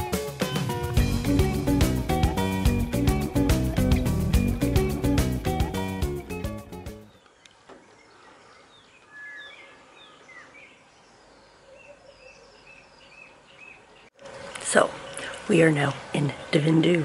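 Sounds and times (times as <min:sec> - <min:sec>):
music: 0:00.0 - 0:07.2
birds chirping: 0:02.4 - 0:17.0.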